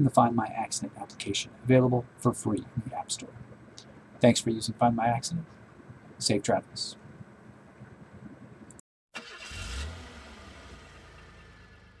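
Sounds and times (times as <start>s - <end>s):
low rumble with hiss: 0.0s - 8.8s.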